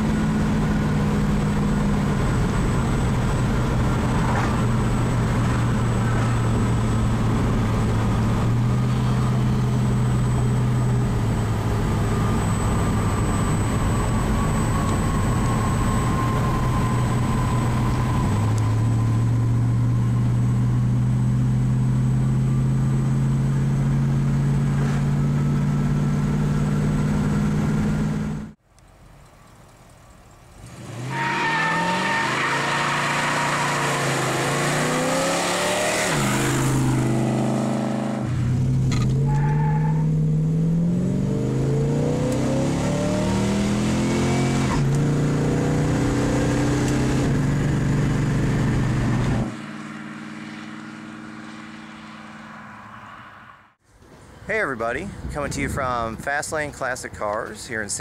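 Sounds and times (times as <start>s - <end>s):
car engine cruising drone: 0.0s - 55.3s
car accelerating hard: 30.6s - 53.4s.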